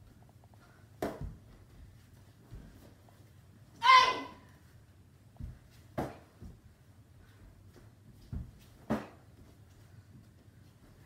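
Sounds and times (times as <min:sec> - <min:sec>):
bare feet on wooden floor: 0:00.0 - 0:11.0.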